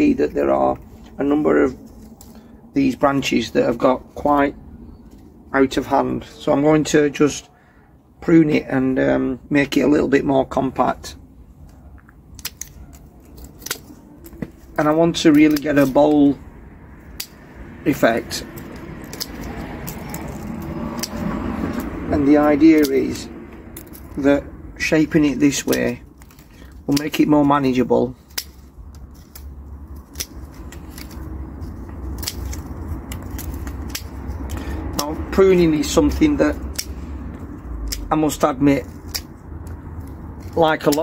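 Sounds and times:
low steady rumble: 11.1 - 40.9
secateurs snipping woody stems: 12.2 - 41.0.

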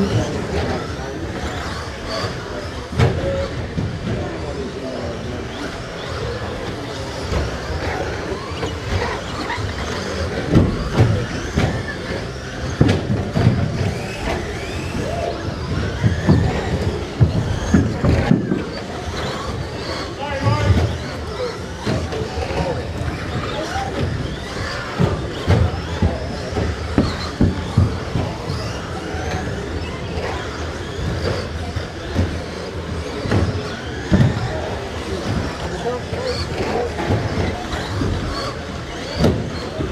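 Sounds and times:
small motors whining: 0.0 - 39.9
toy trucks thumping on track: 5.5 - 39.9
tyres rumbling on carpet: 6.1 - 39.9.

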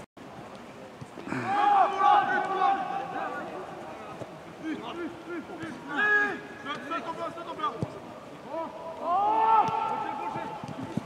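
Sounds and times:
voices shouting: 1.3 - 3.7.

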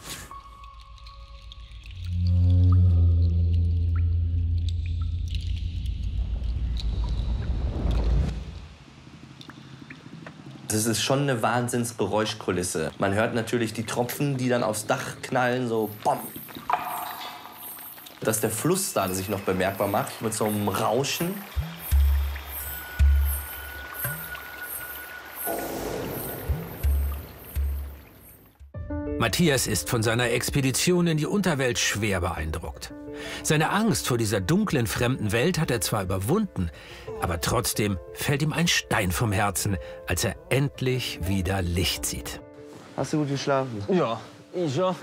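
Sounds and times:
low eerie drone: 1.2 - 8.4
underground river rushing: 2.2 - 28.3.

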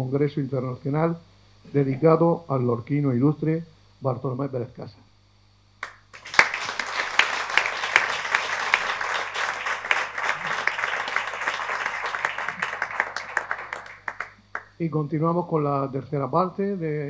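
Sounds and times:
audience applauding: 5.8 - 14.7.

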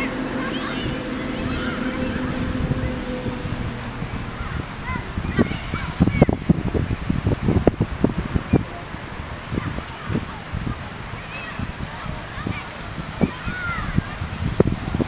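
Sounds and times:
irregular low thumps: 0.0 - 8.7
steady low hum: 0.0 - 9.8
distant children shouting: 0.0 - 15.0.

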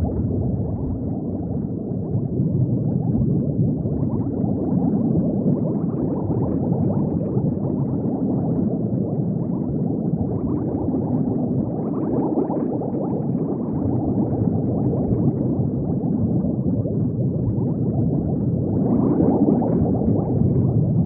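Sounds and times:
underwater bubbling: 0.0 - 21.0.

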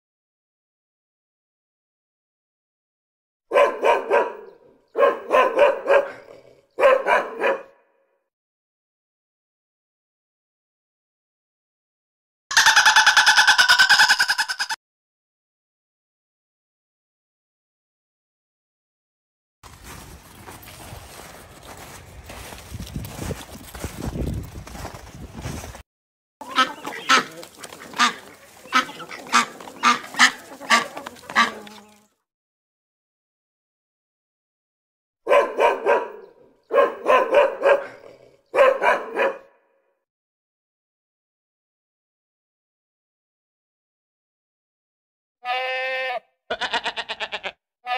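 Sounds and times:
dog barking: 3.5 - 8.0, 35.3 - 39.7
peacock honking calls: 12.5 - 14.8, 26.4 - 32.0.

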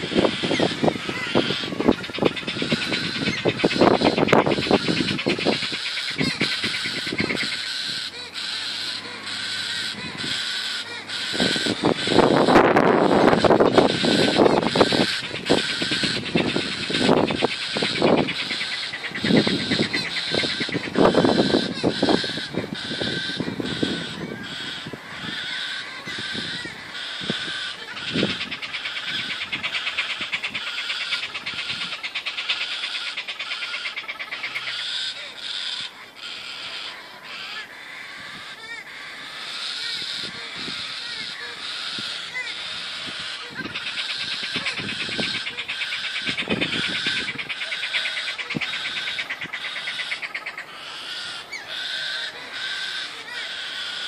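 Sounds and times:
cockatoos calling: 0.0 - 54.0.

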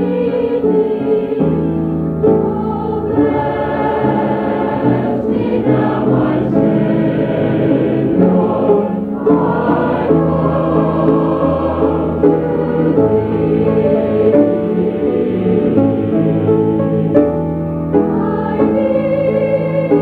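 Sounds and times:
youth choir singing a hymn: 0.0 - 20.0.

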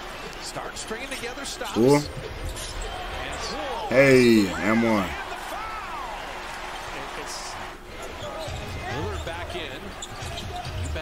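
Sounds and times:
sneakers squeaking on court: 8.1 - 11.0.

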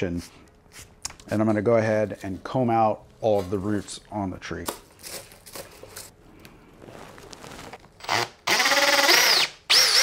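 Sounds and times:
scratching and rustling roots: 6.8 - 7.9
cordless drill driving screw: 8.0 - 10.0.

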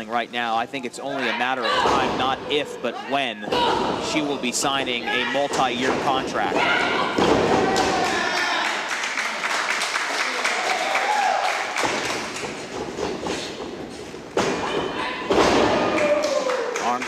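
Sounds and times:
bodies thudding on wrestling ring: 6.6 - 8.0, 11.8 - 16.0.

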